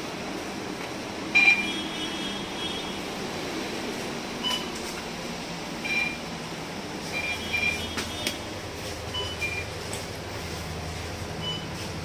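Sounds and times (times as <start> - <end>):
bus engine and air conditioning hum: 0.0 - 12.0.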